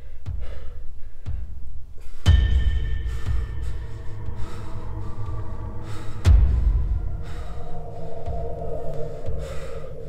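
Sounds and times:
man breathing heavily: 0.0 - 10.0
low music drone: 2.0 - 10.0.

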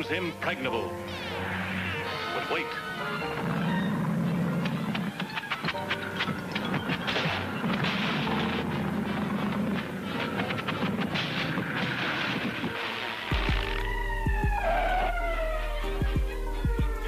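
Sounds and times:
orchestral score: 0.0 - 17.0.

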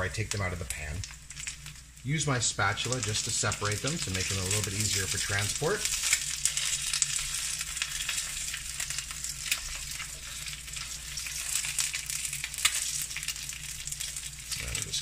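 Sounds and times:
eggs sizzling in a frying pan: 0.0 - 15.0.

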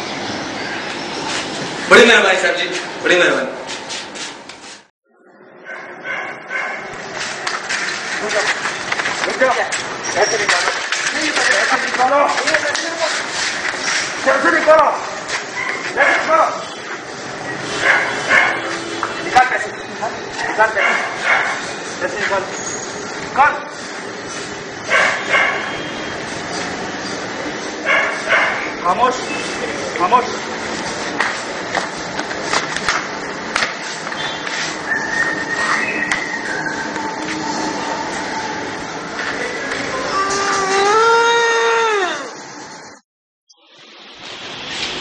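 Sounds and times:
dog barking and yelping: 5.6 - 6.9, 15.6 - 16.3, 17.7 - 18.9, 20.4 - 21.7, 24.9 - 25.8, 27.8 - 28.8
vehicle running: 5.9 - 41.0
vehicle horn blaring: 18.1 - 19.5.

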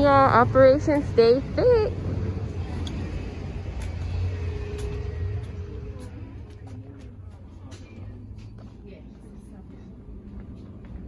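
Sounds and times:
faint hum: 0.0 - 11.0
low rumble: 0.0 - 11.0.

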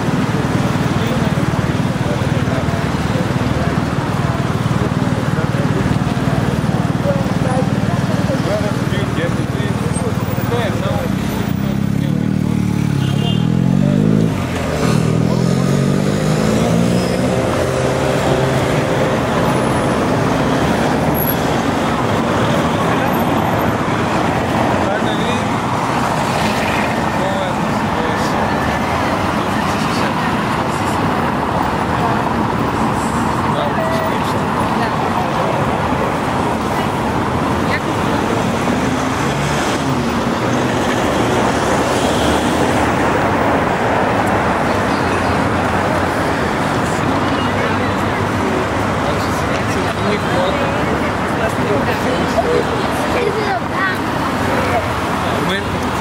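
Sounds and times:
cars passing: 0.0 - 56.0
traffic noise: 0.0 - 56.0
vehicle engine speeding up: 11.3 - 33.7.

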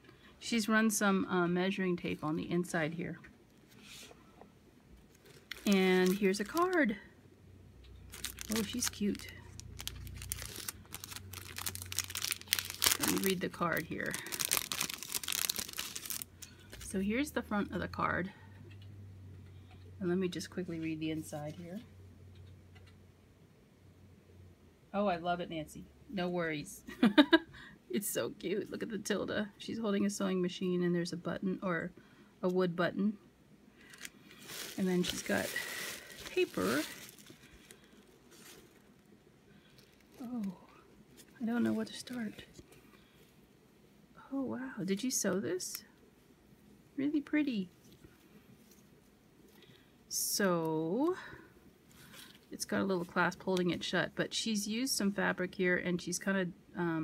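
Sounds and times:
plastic and tissue paper crinkling: 5.1 - 7.0, 8.1 - 17.0, 33.8 - 42.8.

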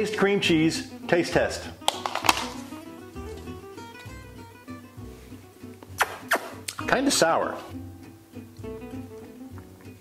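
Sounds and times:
guitar music: 0.0 - 10.0.

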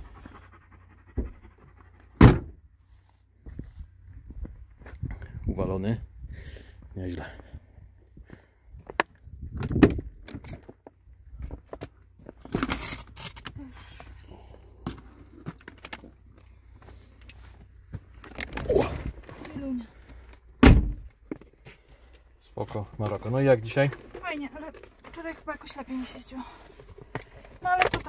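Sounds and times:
heavy thump: 2.2 - 2.6, 20.6 - 21.1.

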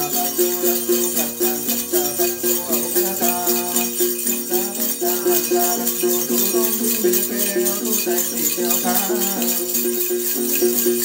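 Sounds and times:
plucked lute: 0.0 - 11.0
small bells jingling: 0.0 - 11.0.

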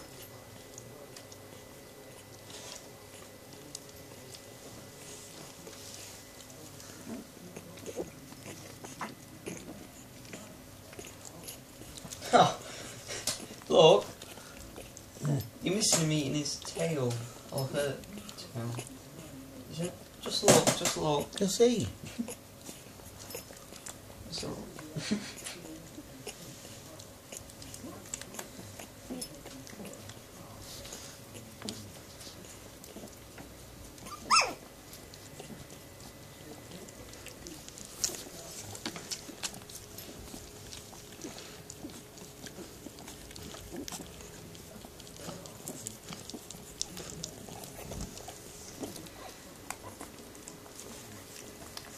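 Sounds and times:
puppies grunting: 0.0 - 51.9
puppies nursing: 0.0 - 51.9
puppy yelping: 34.0 - 34.7.

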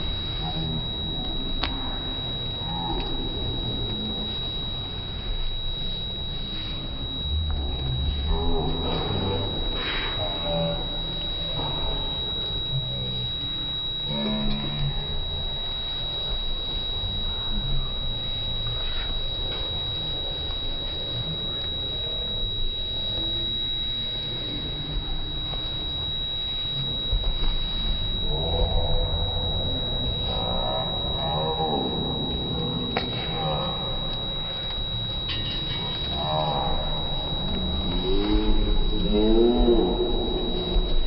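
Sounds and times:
high-pitched whine: 0.0 - 41.0
slowed-down deep voices: 0.0 - 41.0.

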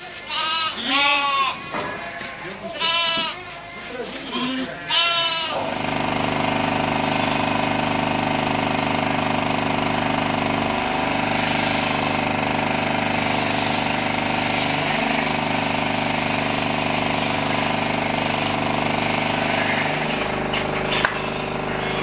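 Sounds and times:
electric shears motor buzzing: 4.6 - 22.0.

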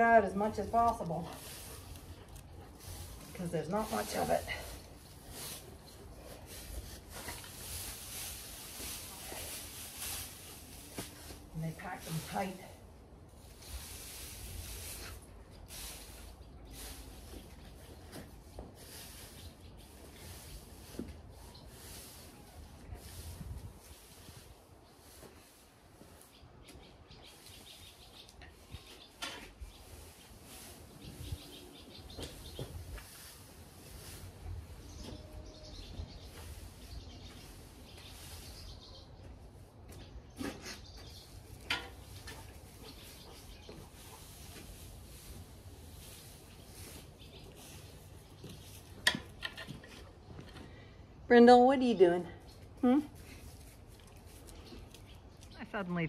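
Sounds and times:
hay rustling: 0.7 - 26.4, 29.7 - 39.0, 41.0 - 49.0.

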